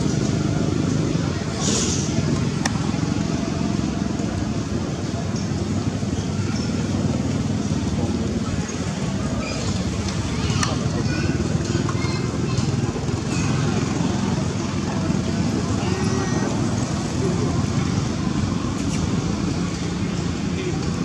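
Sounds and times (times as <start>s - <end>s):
traffic noise: 0.0s - 21.0s
brief high hiss: 1.6s - 2.2s.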